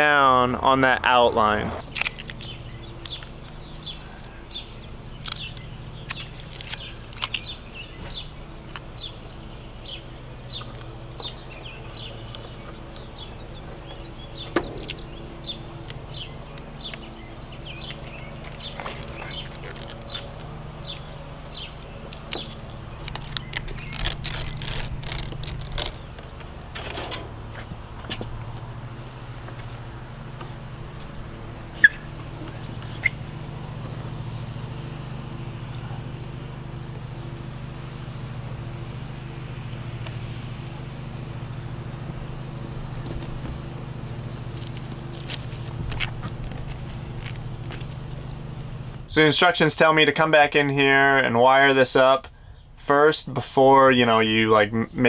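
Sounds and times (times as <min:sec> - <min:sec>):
steady low hum: 0:00.0 - 0:55.0
tape crinkling and tearing: 0:01.8 - 0:04.4, 0:05.1 - 0:08.9, 0:14.3 - 0:15.2, 0:15.8 - 0:28.2, 0:42.9 - 0:49.0.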